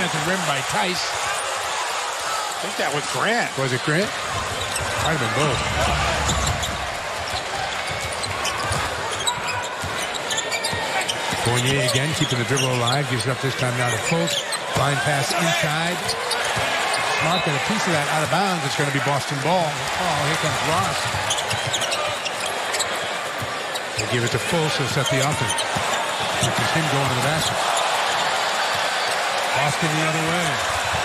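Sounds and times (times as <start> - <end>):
crowd noise: 0.0 - 31.0
sneaker squeaks: 4.5 - 13.1, 21.0 - 24.2, 25.0 - 26.7.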